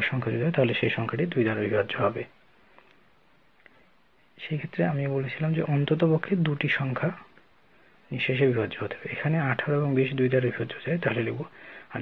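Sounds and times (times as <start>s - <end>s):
man talking: 0.0s - 2.4s, 4.4s - 7.3s, 8.1s - 12.0s.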